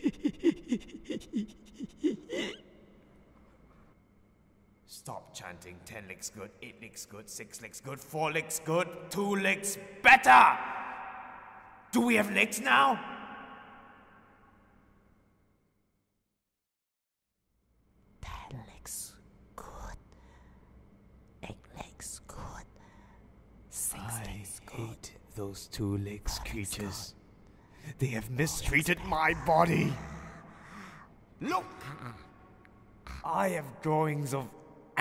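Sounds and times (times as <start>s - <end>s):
person whispering: 18.2s - 20.2s, 21.4s - 22.9s, 23.7s - 25.3s, 26.0s - 27.2s, 27.9s - 30.9s
person gasping: 29.7s - 32.4s.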